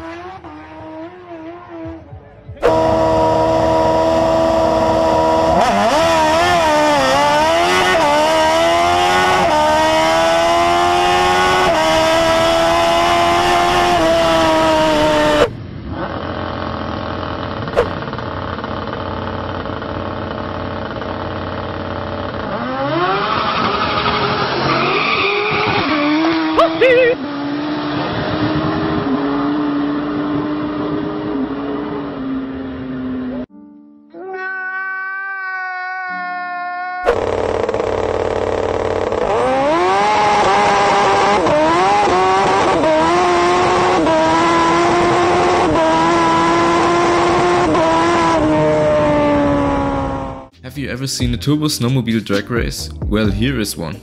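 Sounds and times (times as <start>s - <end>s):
car engine revving: 0.0s - 33.5s, 37.0s - 53.5s
motorcycle engine revving high: 0.0s - 33.5s, 37.0s - 50.6s
tyre noise: 0.1s - 27.2s, 36.0s - 51.6s.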